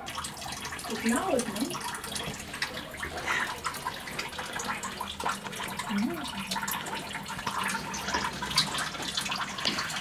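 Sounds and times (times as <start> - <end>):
tap running into sink: 0.0 - 10.0.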